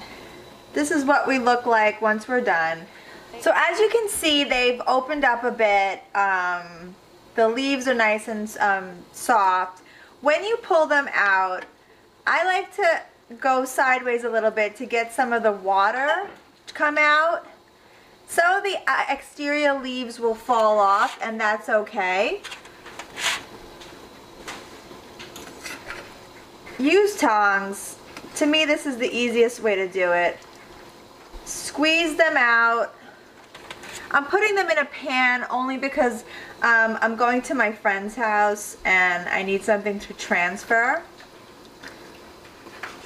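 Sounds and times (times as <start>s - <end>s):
scrape in foil pan: 20.9s - 21.3s, 22.4s - 23.5s.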